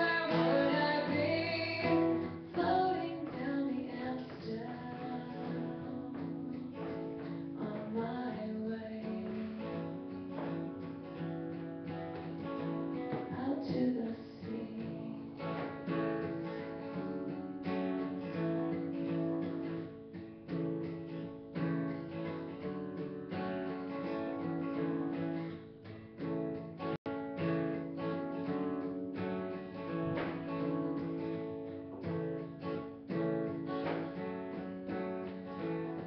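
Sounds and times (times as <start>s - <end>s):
acoustic guitar strumming: 0.0s - 36.0s.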